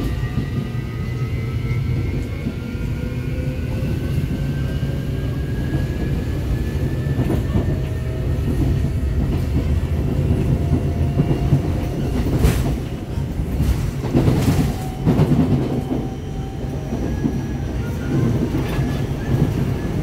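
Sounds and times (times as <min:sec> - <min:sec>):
train interior rumble: 0:00.0 - 0:20.0.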